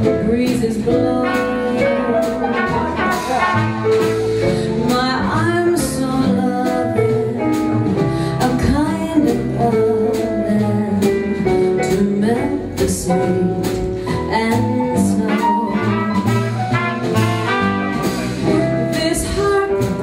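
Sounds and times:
piano: 0:00.0 - 0:20.0
upright bass: 0:00.0 - 0:20.0
trumpet notes: 0:01.2 - 0:04.5, 0:15.3 - 0:19.1.

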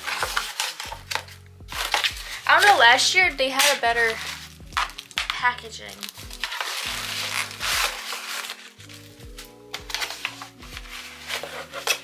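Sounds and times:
background music: 0:00.0 - 0:12.0
cardboard packaging crinkling and tearing: 0:00.0 - 0:12.0.

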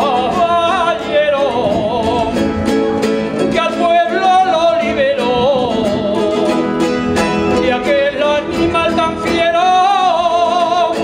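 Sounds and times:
man singing with vibrato: 0:00.0 - 0:11.0
strummed guitar: 0:00.0 - 0:11.0.

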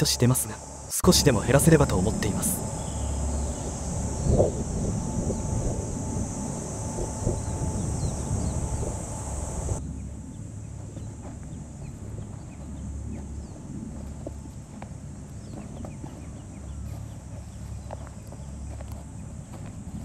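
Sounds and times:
high-pitched hiss: 0:00.0 - 0:09.8
wind noise on microphone: 0:00.0 - 0:20.0.

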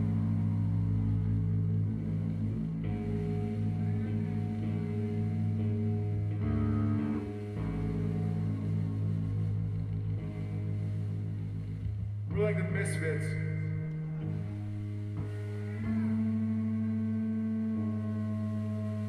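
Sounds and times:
bass guitar droning notes: 0:00.0 - 0:19.0
electric guitar droning chords: 0:00.0 - 0:19.0.

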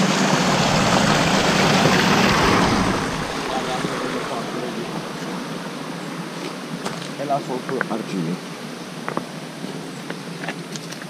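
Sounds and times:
mountain stream rushing: 0:00.0 - 0:07.2.

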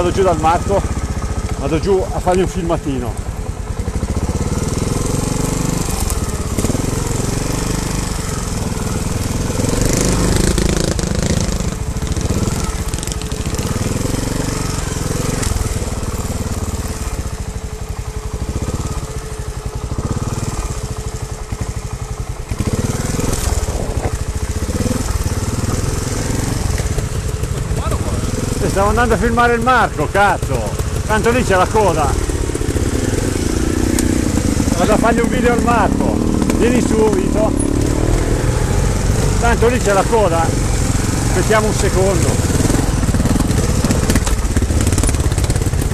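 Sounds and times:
motorcycle engine revving: 0:00.0 - 0:45.9.

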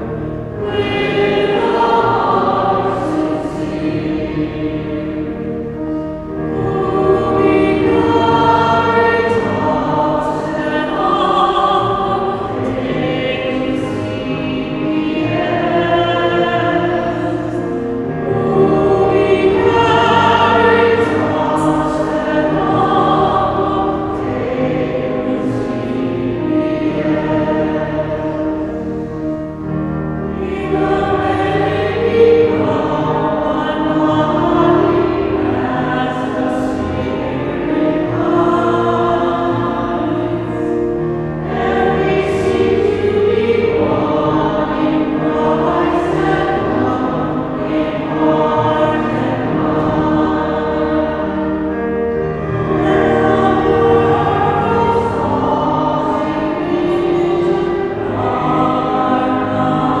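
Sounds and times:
choir singing a hymn: 0:00.0 - 1:00.0
low accompaniment: 0:00.0 - 1:00.0.

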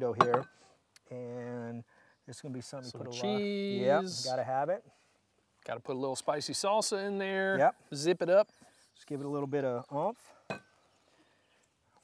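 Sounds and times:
tableware clink: 0:00.2 - 0:00.6, 0:10.5 - 0:10.7
person speaking: 0:02.8 - 0:04.6.

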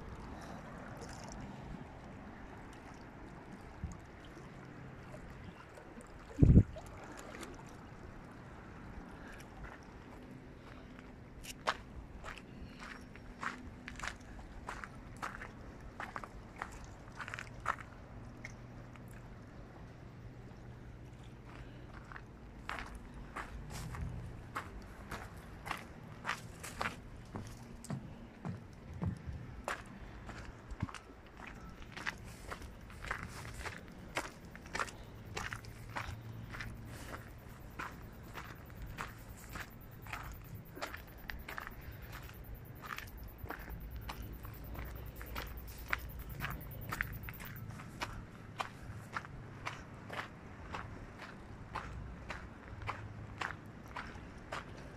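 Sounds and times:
low steady hum: 0:00.0 - 0:54.6
footsteps walking: 0:22.8 - 0:49.8.

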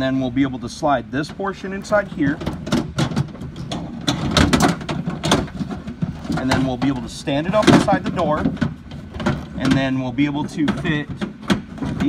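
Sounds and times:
metal part clanking and scraping: 0:01.2 - 0:12.0.

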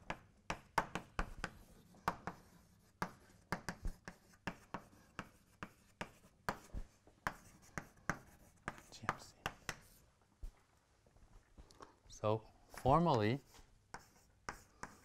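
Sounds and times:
chalk on a blackboard: 0:00.1 - 0:10.0, 0:12.7 - 0:15.0.

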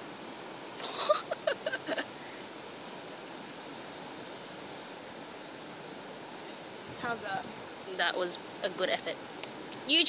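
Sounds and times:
ocean surf hissing: 0:00.0 - 0:10.0.

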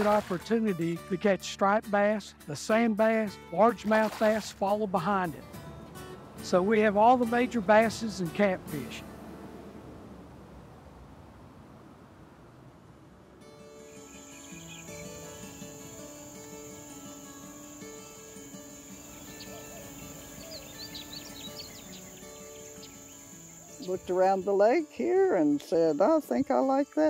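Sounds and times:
soft music with held notes: 0:00.0 - 0:09.5, 0:13.4 - 0:27.0
high-pitched insect trill: 0:13.7 - 0:27.0.

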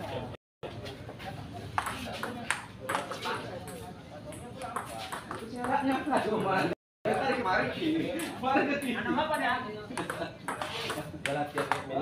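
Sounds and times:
people talking: 0:00.0 - 0:12.0
ping pong ball knocks: 0:10.0 - 0:11.9.

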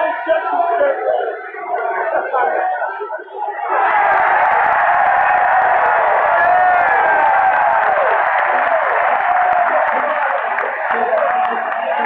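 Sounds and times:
stadium crowd cheering and shouting: 0:00.0 - 0:12.0.

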